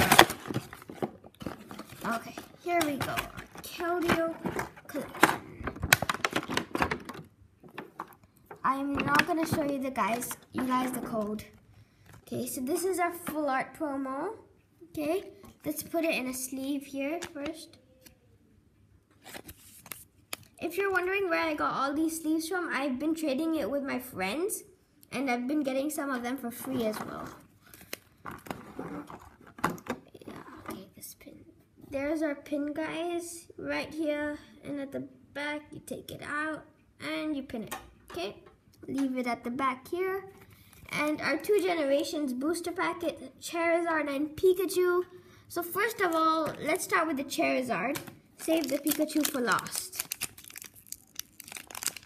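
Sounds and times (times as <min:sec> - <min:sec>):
plastic packaging crinkling: 0:00.0 - 0:07.3, 0:27.6 - 0:29.9, 0:47.9 - 0:52.0
foil wrapper crinkling: 0:48.4 - 0:52.0.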